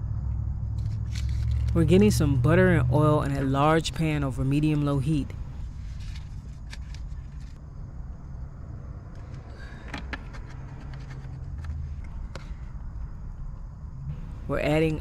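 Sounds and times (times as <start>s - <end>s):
steady low hum: 0.0s - 9.6s, 10.2s - 15.0s.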